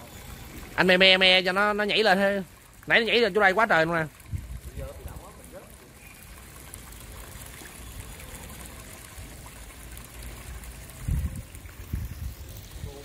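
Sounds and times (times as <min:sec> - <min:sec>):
water trickling into pond: 0:00.0 - 0:13.0.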